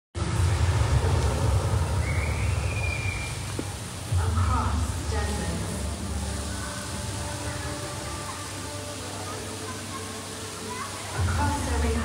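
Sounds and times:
low rumble: 0:00.2 - 0:07.3.

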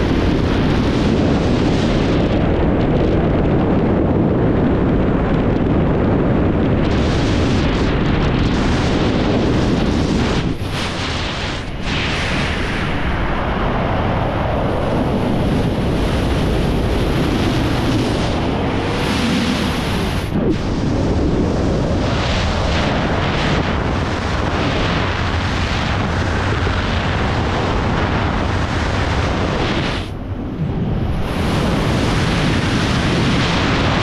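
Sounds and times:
wind roar on camera microphone: 0:00.0 - 0:34.0.

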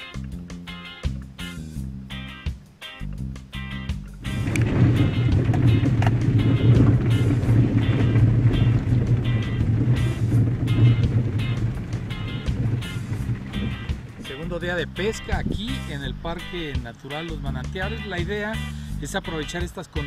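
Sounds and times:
background music with a beat: 0:00.0 - 0:15.9
vehicle driving in rain rumble: 0:04.2 - 0:15.9.

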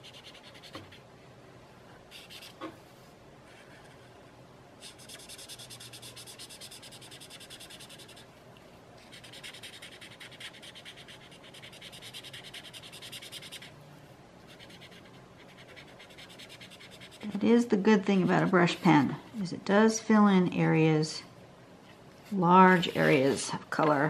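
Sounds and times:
brush pen scrubbing on paper: 0:09.0 - 0:13.7, 0:22.3 - 0:23.6.

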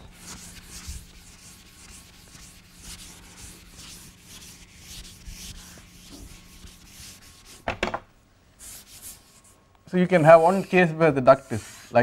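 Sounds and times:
chalk on a blackboard: 0:00.0 - 0:07.6, 0:08.6 - 0:09.6, 0:10.2 - 0:12.0.

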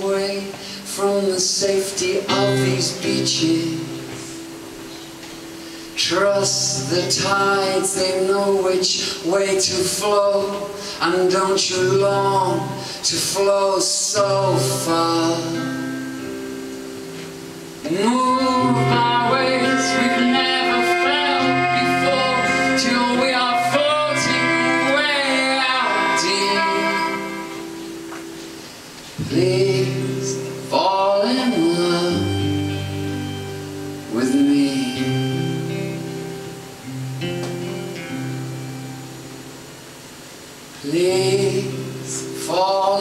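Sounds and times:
man singing: 0:00.0 - 0:04.6, 0:05.6 - 0:16.0, 0:17.8 - 0:27.9, 0:29.2 - 0:36.4, 0:40.8 - 0:43.0.

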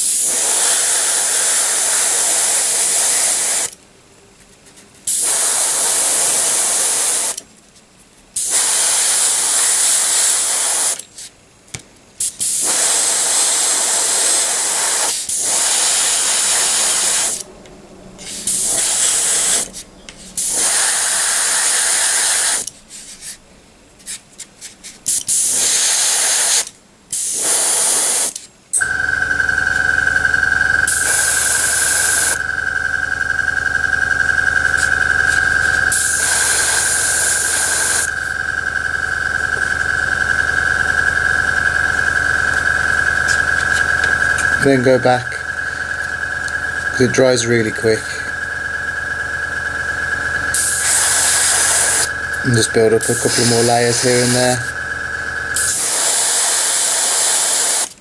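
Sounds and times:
airbrush spraying: 0:00.0 - 0:03.7, 0:05.1 - 0:07.4, 0:08.4 - 0:11.3, 0:12.2 - 0:17.4, 0:18.2 - 0:23.4, 0:24.0 - 0:32.4, 0:34.6 - 0:38.4, 0:50.5 - 0:54.7, 0:55.5 - 0:57.9
compressor running: 0:00.0 - 0:03.8, 0:05.1 - 0:07.4, 0:08.4 - 0:11.0, 0:12.6 - 0:22.8, 0:25.3 - 0:26.6, 0:27.2 - 0:58.0.

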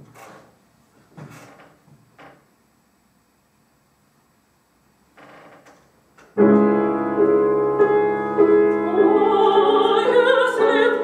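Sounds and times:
grand piano chord: 0:06.4 - 0:11.0.

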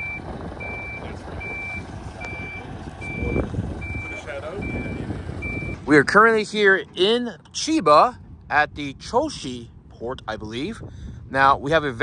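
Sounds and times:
truck warning beeper: 0:00.0 - 0:05.9
truck engine rumble: 0:00.0 - 0:12.0.

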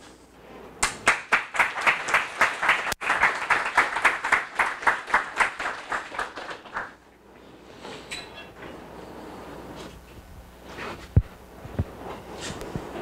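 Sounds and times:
audience clapping: 0:00.8 - 0:07.0.

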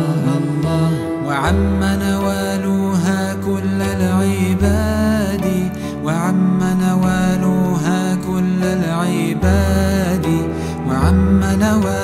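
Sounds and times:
bowed string low notes: 0:00.0 - 0:12.0.

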